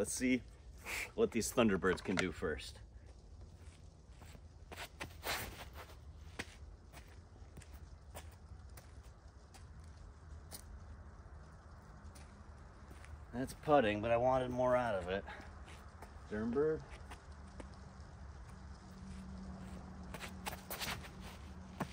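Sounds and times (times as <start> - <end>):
footsteps on concrete: 18.4 - 21.9.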